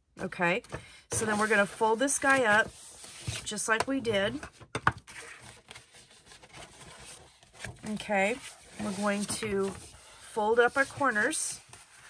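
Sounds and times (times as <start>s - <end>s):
paper rustling: 5.0s - 12.0s.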